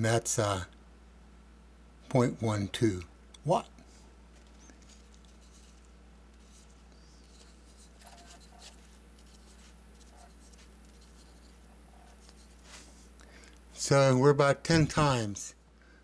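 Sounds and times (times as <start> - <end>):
marker pen scratching on paper: 4.8 - 13.0.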